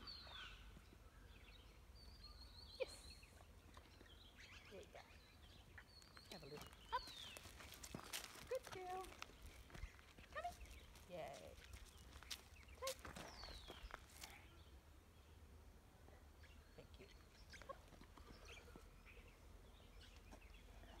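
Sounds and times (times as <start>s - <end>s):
bird chirps: 0.0s - 11.0s, 11.6s - 14.7s.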